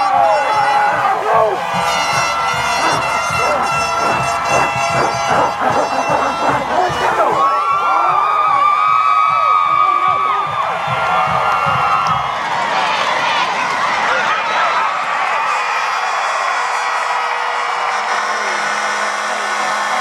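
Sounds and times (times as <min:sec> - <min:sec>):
crowd shouting and cheering: 0:00.0 - 0:20.0
steady horn note: 0:01.6 - 0:07.4.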